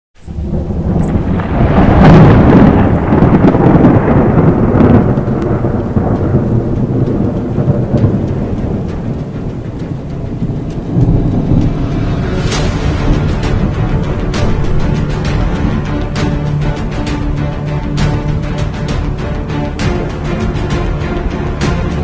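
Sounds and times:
rain: 0.2s - 22.0s
rolling thunder: 0.2s - 22.0s.

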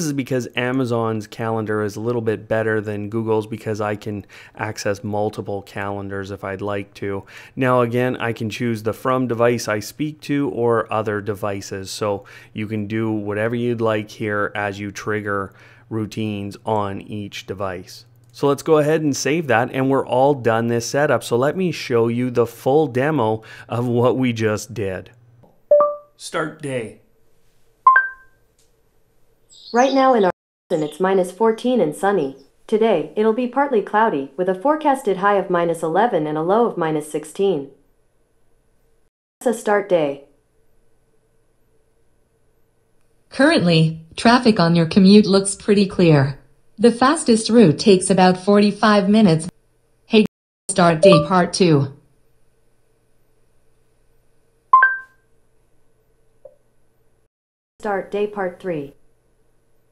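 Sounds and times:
two-note electronic chime: 25.7s - 26.1s, 27.9s - 28.3s, 51.0s - 51.4s, 54.8s - 55.1s.

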